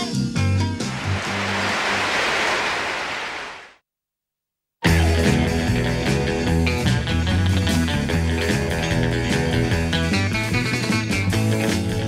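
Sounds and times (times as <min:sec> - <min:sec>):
static hiss: 0:00.8 - 0:03.8.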